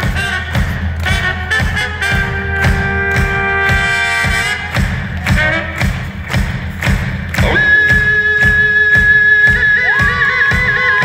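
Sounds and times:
drums beating steadily: 0.0 - 11.0.

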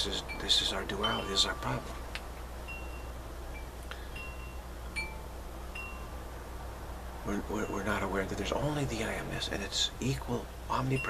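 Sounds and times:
steady low hum: 0.0 - 11.0
faint high chime notes: 0.2 - 2.0, 2.7 - 6.2.

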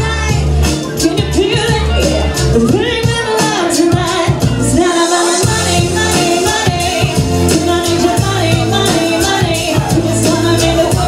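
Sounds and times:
backing music with bass and beat: 0.0 - 11.0
woman singing into microphone: 0.0 - 11.0.

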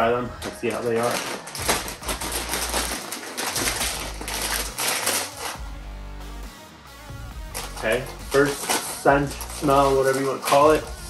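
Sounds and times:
background music: 0.0 - 11.0
chip bag crinkling: 0.3 - 5.6, 7.5 - 11.0.

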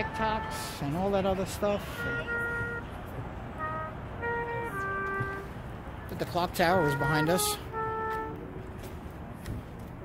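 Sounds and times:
low city background rumble: 0.0 - 10.0
trumpet playing a melody: 1.8 - 5.6, 6.6 - 8.6.

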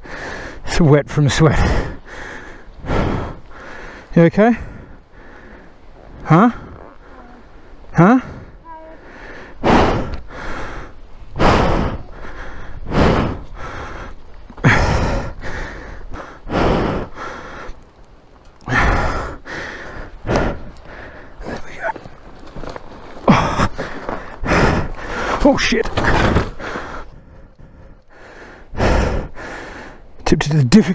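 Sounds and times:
person breathing heavily with effort: 0.0 - 0.7, 1.4 - 18.0, 18.6 - 22.0, 23.2 - 30.2.

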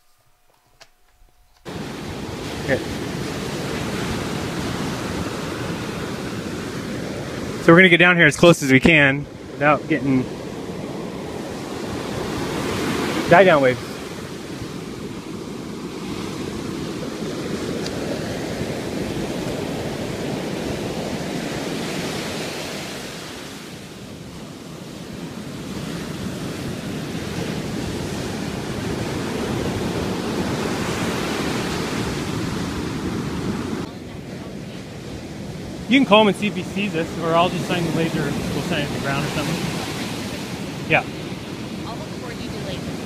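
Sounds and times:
wind on microphone: 1.2 - 7.7, 8.8 - 43.0
waves breaking on beach: 1.6 - 43.0.

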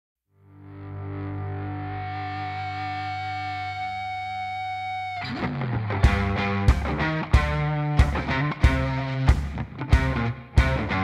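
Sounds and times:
distorted electric guitar chord: 0.4 - 11.0.

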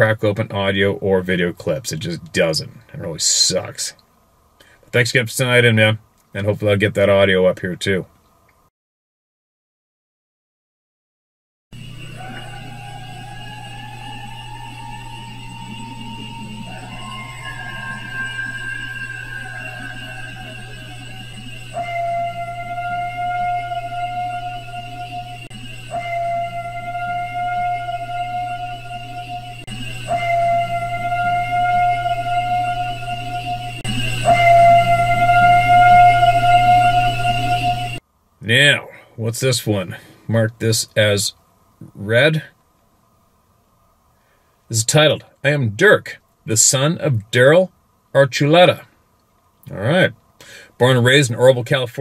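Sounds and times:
constant low hum: 0.0 - 8.7, 11.8 - 52.0
long whistle-like tones: 11.7 - 38.0.

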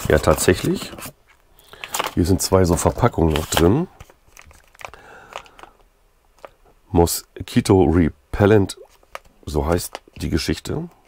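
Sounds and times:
plastic packet crinkling: 1.6 - 5.8.

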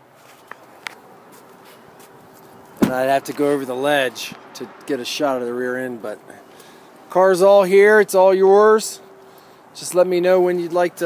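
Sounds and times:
man speaking: 2.8 - 6.5, 7.1 - 9.1, 9.8 - 11.0.

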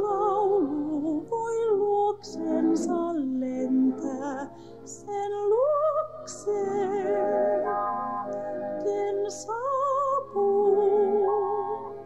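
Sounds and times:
woman singing slow song: 0.0 - 7.6, 8.7 - 12.0
musical accompaniment: 0.0 - 12.0.

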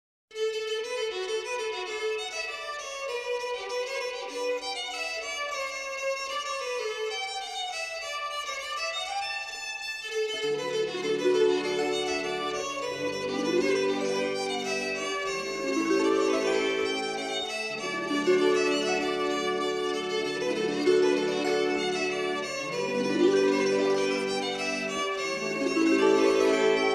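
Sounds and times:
fiddle melody: 0.3 - 26.9
low sustained accompanying notes: 10.8 - 26.9.

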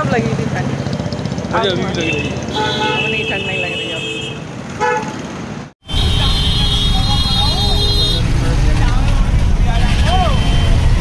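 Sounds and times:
voices: 0.0 - 4.4, 5.9 - 11.0
vehicle road noise rumble: 0.0 - 11.0.

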